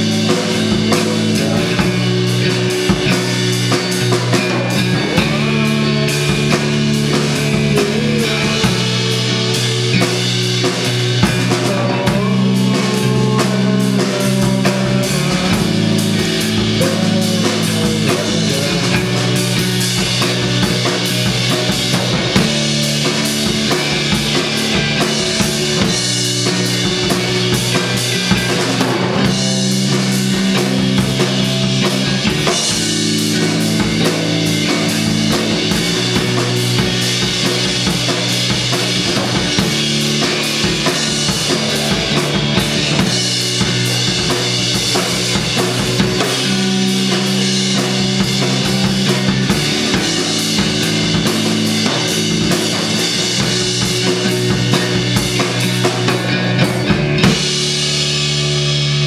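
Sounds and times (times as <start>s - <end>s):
drum kit beat: 0.0s - 59.0s
electric guitar chords: 0.0s - 59.0s.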